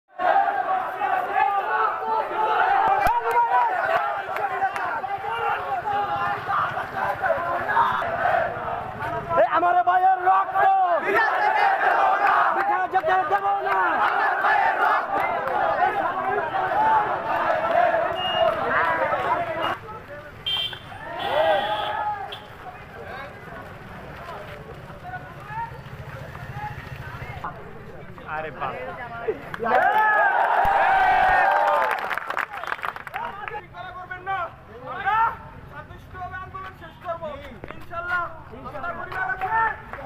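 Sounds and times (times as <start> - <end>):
crowd shouting slogans: 0.1 - 19.9, 20.8 - 22.6.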